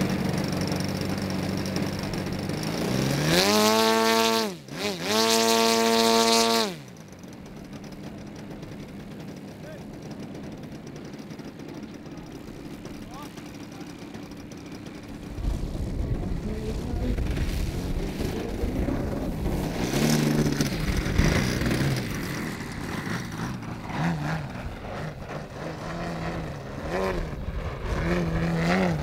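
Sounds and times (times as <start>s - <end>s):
model plane engine revving: 0.0s - 29.0s.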